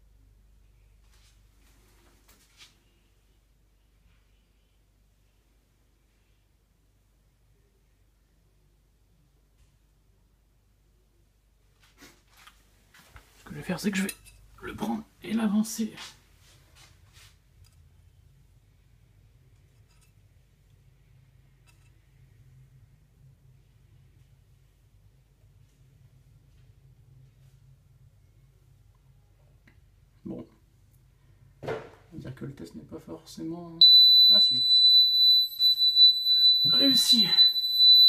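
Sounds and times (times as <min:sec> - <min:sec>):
faint low hum: 0:00.0 - 0:38.0
smoke alarm high-pitched tone: 0:33.8 - 0:38.0.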